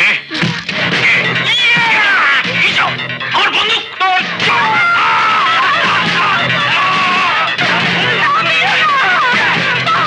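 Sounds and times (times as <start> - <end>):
dramatic film music: 0.2 - 10.0.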